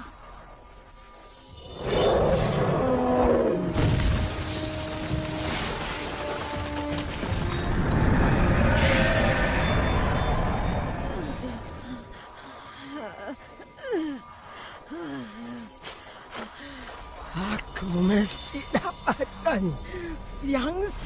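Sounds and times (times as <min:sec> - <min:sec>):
dramatic film music: 0:01.4 - 0:21.0.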